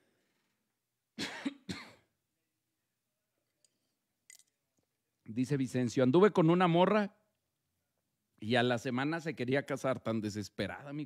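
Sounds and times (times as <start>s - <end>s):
man coughing: 1.2s - 2.1s.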